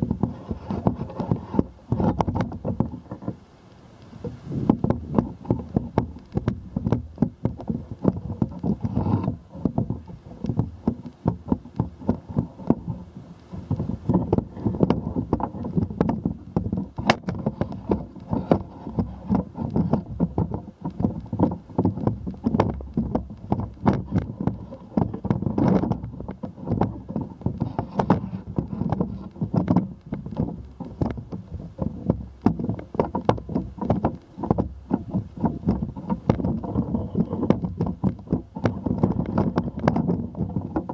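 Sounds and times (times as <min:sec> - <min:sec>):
clicks and knocks from pole: 0:00.0 - 0:03.4, 0:04.2 - 0:40.9
wind on microphone: 0:00.0 - 0:40.9.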